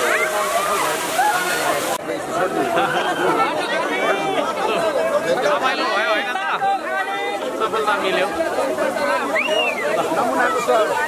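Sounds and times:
water splashing and pouring: 0:00.0 - 0:02.1
excited crowd voices: 0:00.0 - 0:11.0.

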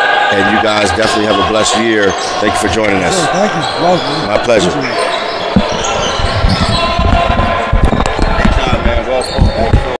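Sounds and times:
indistinct voices: 0:00.0 - 0:09.9.

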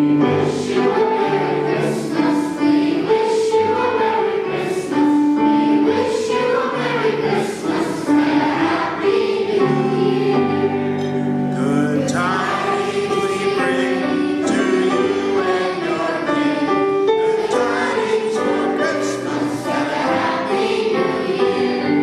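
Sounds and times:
children's choir singing: 0:00.0 - 0:22.0.

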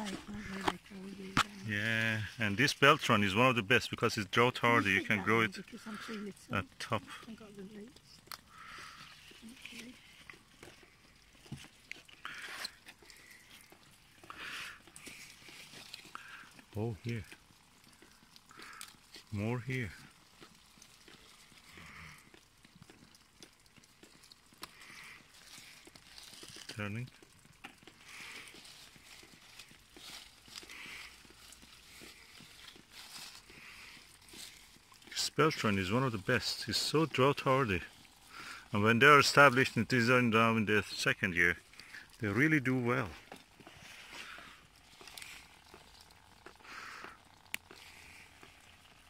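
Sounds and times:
leaves rustling: 0:08.5 - 0:22.3, 0:23.1 - 0:49.0.

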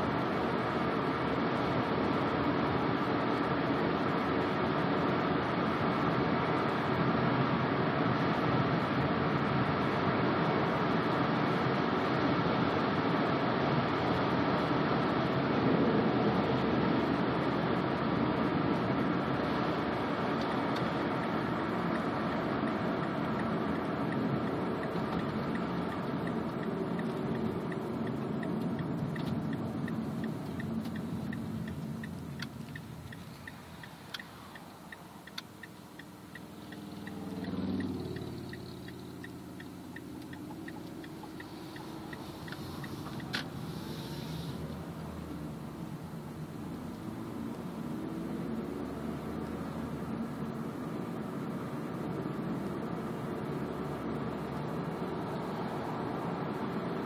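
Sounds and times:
car engine under throttle: 0:00.0 - 0:57.0
engine revving: 0:36.3 - 0:50.4.

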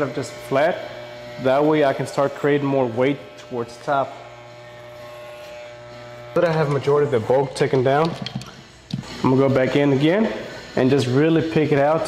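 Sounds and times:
electric hair clipper buzzing: 0:00.0 - 0:12.0.

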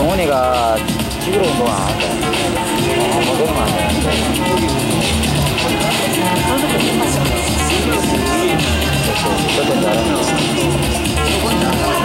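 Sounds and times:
electronic dance music: 0:00.0 - 0:12.0
voice over music: 0:00.0 - 0:12.0.

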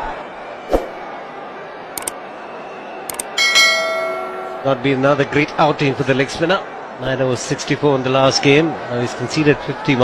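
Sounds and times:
stadium crowd noise: 0:00.0 - 0:10.0
short clicks: 0:02.0 - 0:02.2, 0:03.1 - 0:03.4
bell chime: 0:03.3 - 0:05.0.

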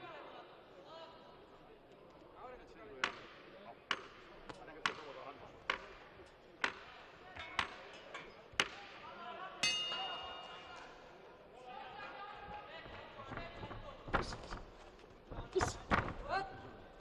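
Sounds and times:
boxing ring bell ringing: 0:09.6 - 0:10.7.

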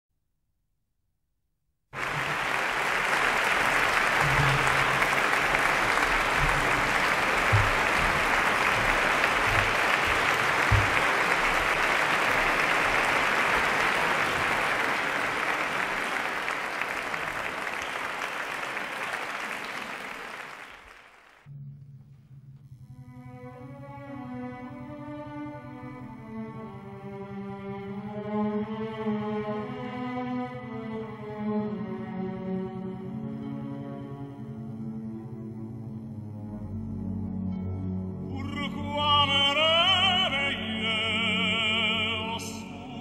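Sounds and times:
audience applauding: 0:02.0 - 0:21.5.

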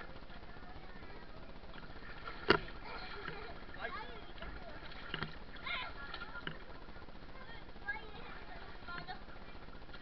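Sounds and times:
water lapping and sloshing: 0:00.0 - 0:10.0
children calling out: 0:05.6 - 0:06.5.

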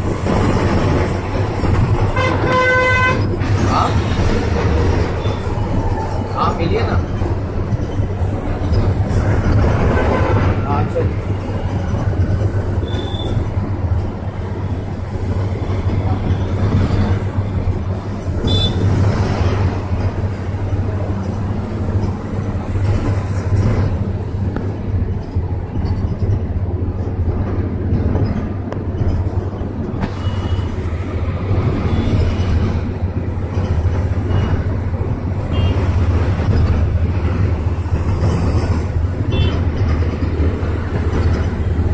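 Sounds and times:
bus engine drone: 0:00.0 - 0:41.9
tyre road noise: 0:00.0 - 0:41.9.

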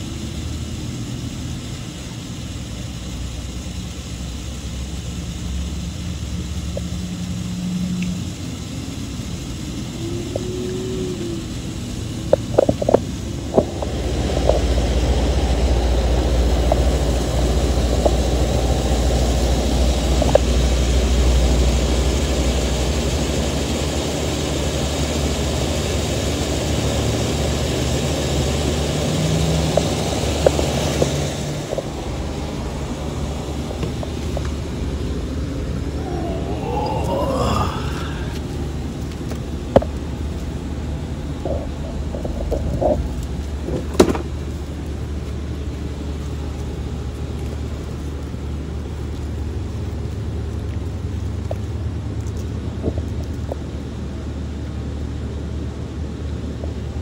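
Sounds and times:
motor engine droning: 0:00.0 - 0:45.0.

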